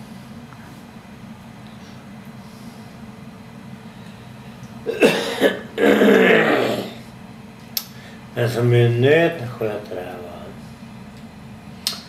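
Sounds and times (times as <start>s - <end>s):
man clearing throat: 4.9s - 7.0s
man coughing: 4.9s - 7.0s.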